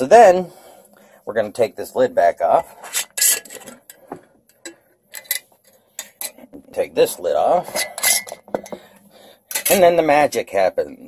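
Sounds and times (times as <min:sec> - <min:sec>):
metal clicking on glass jar: 0:03.1 - 0:06.4.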